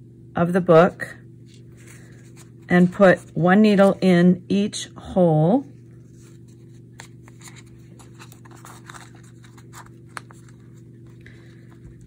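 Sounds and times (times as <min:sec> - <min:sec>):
steady low hum: 0:00.0 - 0:12.0
paper rustling and needle clicks: 0:06.4 - 0:12.0.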